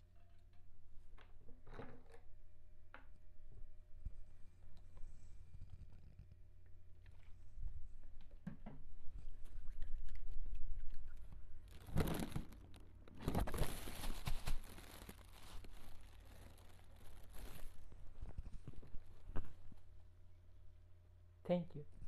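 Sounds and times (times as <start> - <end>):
plastic cape crinkling: 11.0 - 19.6.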